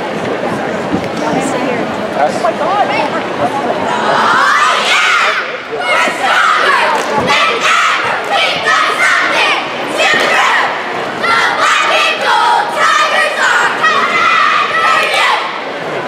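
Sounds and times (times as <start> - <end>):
cheerleaders shouting in unison: 3.9 - 15.7.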